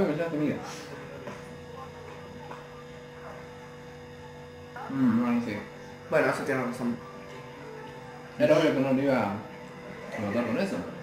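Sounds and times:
faint voices: 0.0s - 11.0s
low electrical hum: 0.0s - 11.0s.

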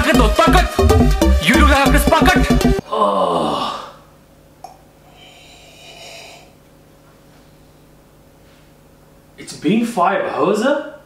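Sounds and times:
person slurping from a mug: 5.1s - 6.6s.

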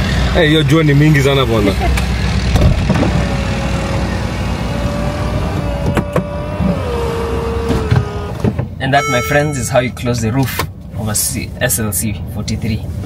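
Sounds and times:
low engine rumble: 0.0s - 13.0s
electric motor whine: 2.8s - 8.4s.

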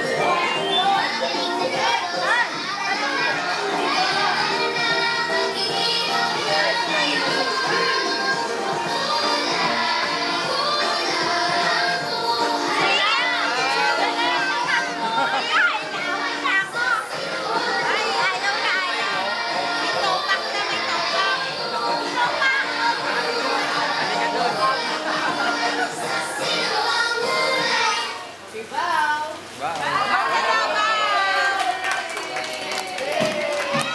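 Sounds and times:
children's dance music: 0.0s - 28.4s
small children chattering: 0.0s - 33.0s.

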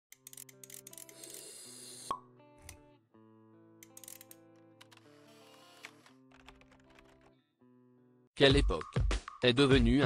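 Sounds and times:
soft background music: 0.1s - 10.0s.

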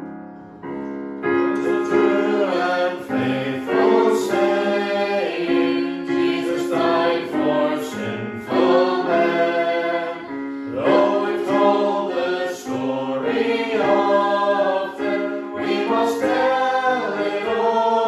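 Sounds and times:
electric keyboard: 0.0s - 18.0s
group singing a hymn in harmony: 1.5s - 18.0s.

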